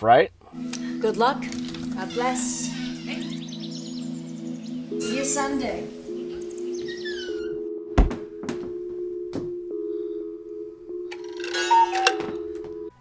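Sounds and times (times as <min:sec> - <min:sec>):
horror music drone: 0:00.5 - 0:07.8
heavy thud: 0:08.0 - 0:09.6.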